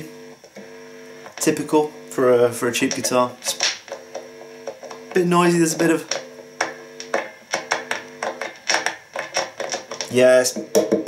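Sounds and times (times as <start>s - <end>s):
pickup noise: 0.0s - 8.7s.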